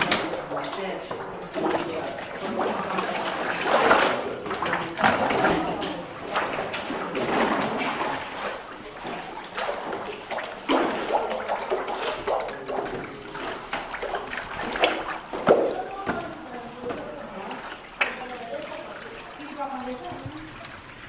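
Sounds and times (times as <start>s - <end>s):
water sloshing and splashing: 0.0s - 21.0s.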